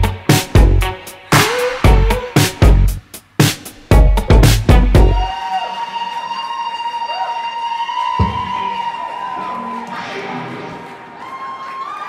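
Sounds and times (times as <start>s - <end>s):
audience cheering and whooping: 5.0s - 12.0s.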